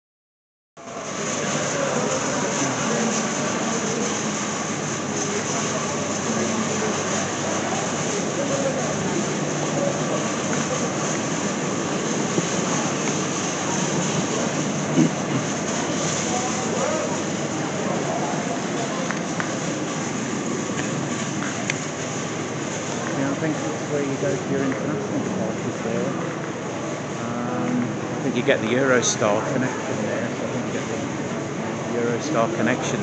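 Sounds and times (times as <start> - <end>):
hubbub of voices and movement: 0.8 - 33.0.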